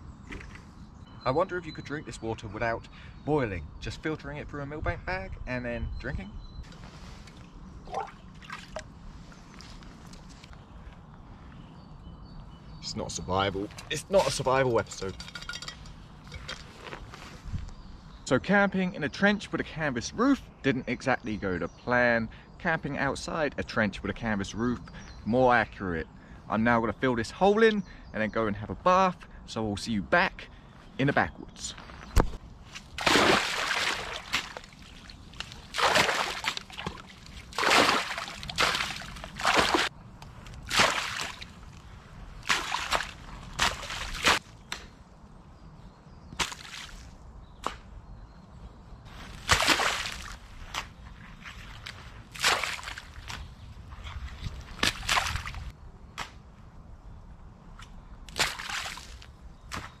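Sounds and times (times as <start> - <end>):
earth slopping into muddy water: 7.8 - 8.9, 32.2 - 39.9, 40.5 - 41.8, 42.4 - 44.4, 46.4 - 47.1, 49.3 - 56.3, 58.3 - 59.9
spade scooping and throwing earth: 40.5 - 41.5, 42.4 - 44.4, 49.1 - 53.5.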